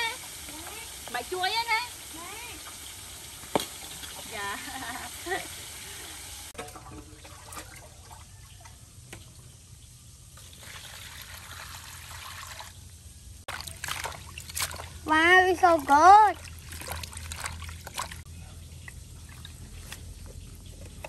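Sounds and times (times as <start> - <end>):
water poured and splashing: 0.0 - 9.5, 10.4 - 12.8, 13.4 - 21.0.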